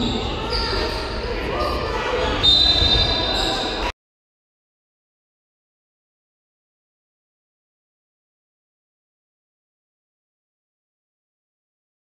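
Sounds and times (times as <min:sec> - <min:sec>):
voices echoing: 0:00.0 - 0:03.9.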